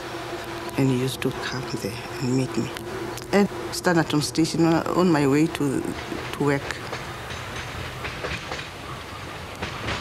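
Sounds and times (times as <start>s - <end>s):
train rumbling on rails: 0.0s - 10.0s
wheels clacking over rail joints: 2.2s - 10.0s.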